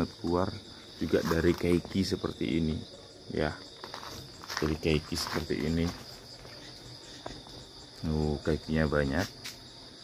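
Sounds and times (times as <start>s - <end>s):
high-pitched insect chorus: 0.0s - 10.0s.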